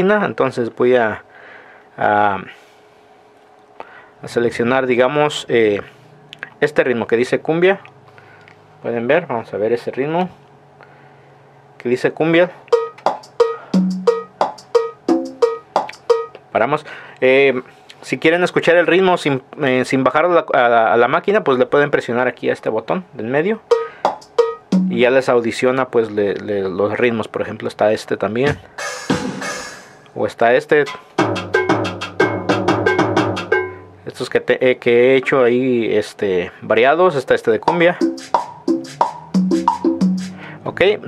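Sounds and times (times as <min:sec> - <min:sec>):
percussion loop hits: 0:12.7 - 0:16.4, 0:23.7 - 0:25.1, 0:28.5 - 0:30.1, 0:30.8 - 0:34.0, 0:37.6 - 0:40.5.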